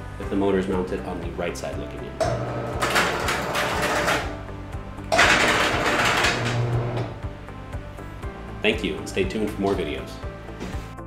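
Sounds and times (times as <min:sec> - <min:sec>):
music with steady beat: 0:01.7 - 0:11.0
shutter motor running: 0:05.1 - 0:07.2.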